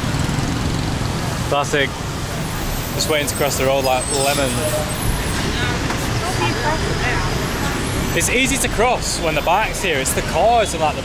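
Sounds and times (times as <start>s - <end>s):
motor scooters passing: 0.0s - 10.8s
bus passing: 0.0s - 11.0s
rumble of engines and tyres: 0.0s - 11.0s.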